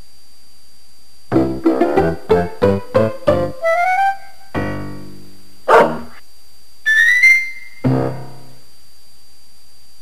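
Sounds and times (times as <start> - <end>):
soft piano music: 1.4 - 5.3
dog bark: 5.7 - 6.2.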